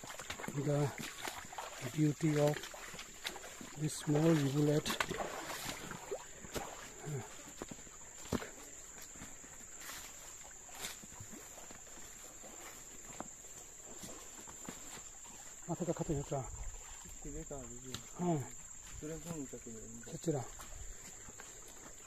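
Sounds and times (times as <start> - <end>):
footsteps on dry leaves: 0.0 - 15.6.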